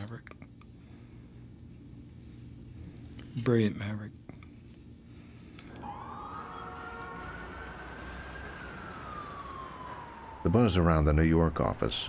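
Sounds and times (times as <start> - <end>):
low city rumble: 0.0 - 12.0
siren wail: 5.7 - 12.0.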